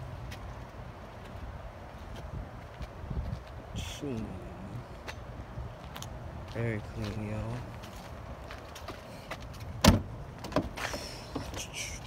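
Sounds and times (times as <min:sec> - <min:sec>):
car door slamming: 0:09.8 - 0:10.8.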